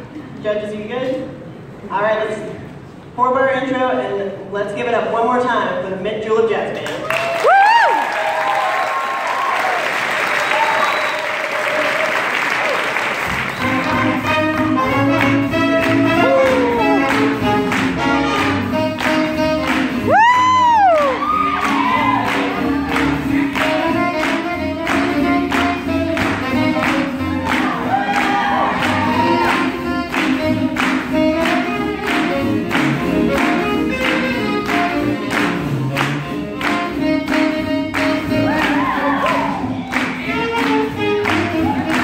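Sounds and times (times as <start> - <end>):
crowd whooping: 7.1 - 13.0, 16.0 - 17.4, 20.0 - 23.5, 27.4 - 29.8, 38.3 - 40.6, 41.5 - 42.0
swing jazz band playing: 13.1 - 42.0.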